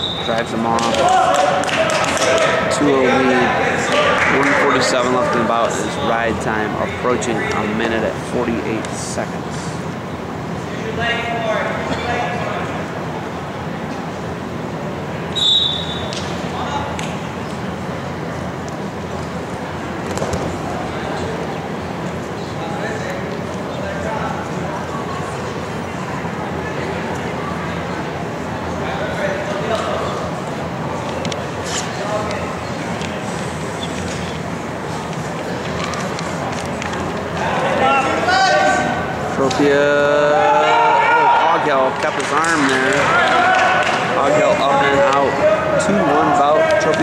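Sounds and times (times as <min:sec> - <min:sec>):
referee's whistle blast: 0:00.0 - 0:00.6, 0:15.3 - 0:16.1
scattered voices in a gym: 0:00.0 - 0:47.0
people shouting: 0:00.8 - 0:04.8, 0:37.4 - 0:39.1, 0:39.9 - 0:41.7, 0:42.9 - 0:47.0.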